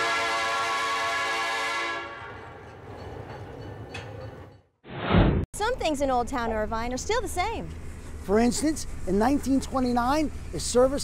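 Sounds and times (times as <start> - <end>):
train horn blast: 0.0 - 2.4.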